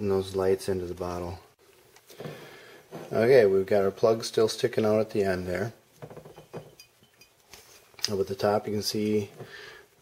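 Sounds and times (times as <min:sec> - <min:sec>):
glass bottle clinking: 0:06.0 - 0:07.4.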